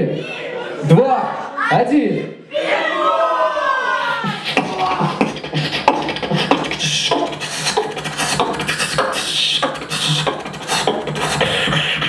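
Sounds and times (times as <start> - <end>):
human beatboxing: 4.2 - 12.0.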